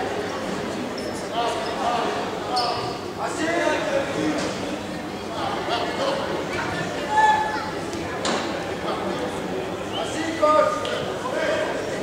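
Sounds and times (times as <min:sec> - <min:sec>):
voices calling out in hall: 0:00.0 - 0:12.0.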